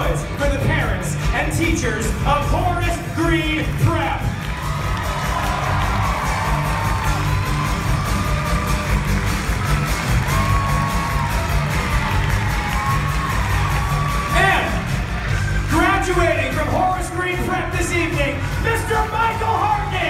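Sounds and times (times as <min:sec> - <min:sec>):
audience cheering and whooping: 0:04.0 - 0:15.8.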